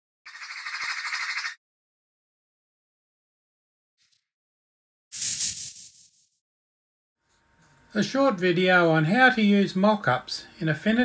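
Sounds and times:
harsh rasping squawk effect: 0.3s - 1.6s.

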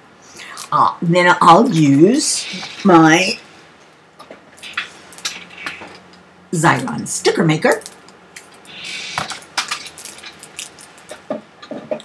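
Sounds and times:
plastic packaging rustling: 7.8s - 11.3s.

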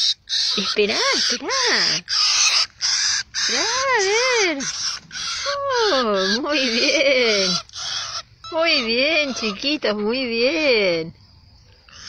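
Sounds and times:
young birds screeching for food: 0.0s - 11.1s, 11.7s - 12.0s.

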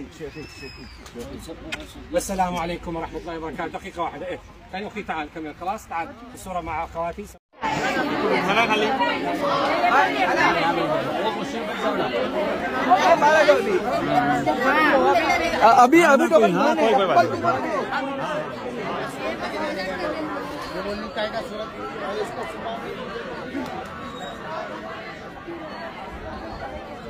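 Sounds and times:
crowd babble of voices: 0.0s - 27.0s.

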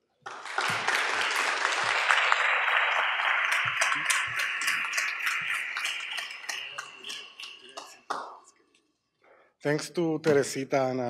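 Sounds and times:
audience applauding: 0.2s - 8.6s.

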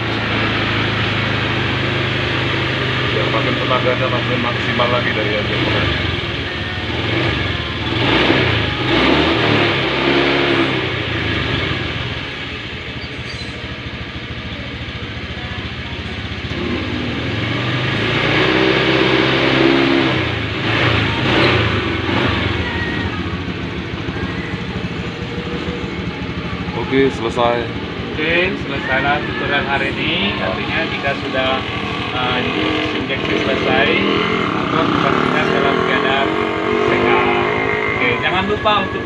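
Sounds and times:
scooter engine idling and revving: 0.0s - 39.0s.

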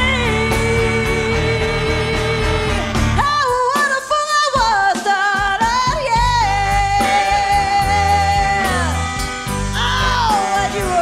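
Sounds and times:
live band playing: 0.0s - 11.0s
person singing with vibrato: 0.0s - 11.0s.

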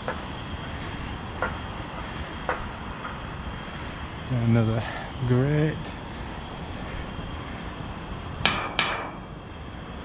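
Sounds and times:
steady low background noise: 0.0s - 10.0s
sharp metal clanks: 8.4s - 9.3s.

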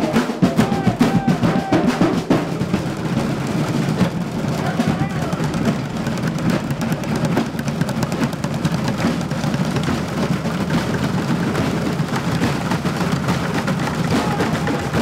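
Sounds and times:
drumsticks beating plastic buckets: 0.0s - 15.0s.

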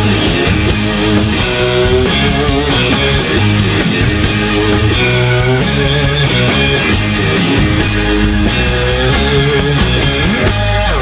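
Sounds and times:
drums: 0.0s - 11.0s
electric bass: 0.0s - 11.0s
electric guitar sustaining notes: 0.0s - 11.0s.

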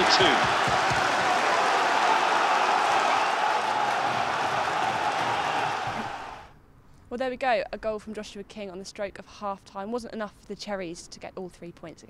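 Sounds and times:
stadium crowd noise: 0.0s - 6.5s.

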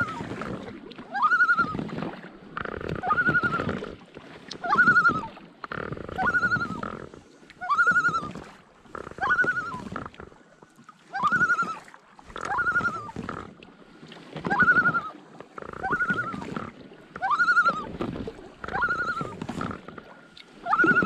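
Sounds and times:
paddle strokes splashing in water: 0.0s - 21.0s
loon tremolo call: 4.7s - 5.2s, 6.2s - 6.8s, 7.6s - 8.3s.

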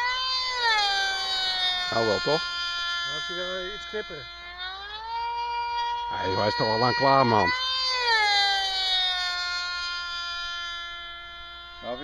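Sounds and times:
model plane engines whining: 0.0s - 12.0s.

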